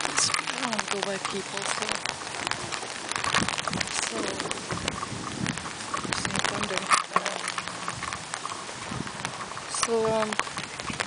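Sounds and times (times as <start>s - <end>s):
hiss of rain: 0.0s - 11.0s
raindrops tapping umbrella: 0.0s - 11.0s.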